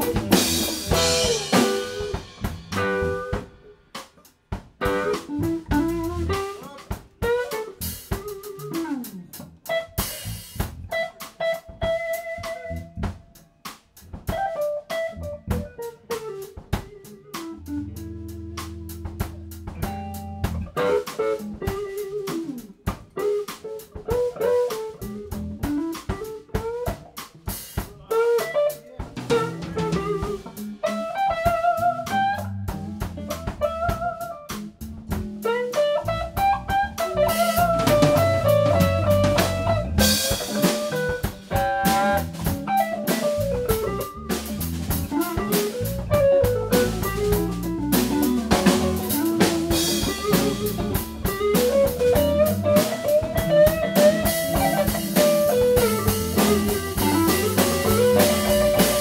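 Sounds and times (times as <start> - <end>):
bending electric guitar lead: 0.0 - 3.9, 4.8 - 13.4, 14.1 - 59.0
steady drumming: 0.0 - 59.0.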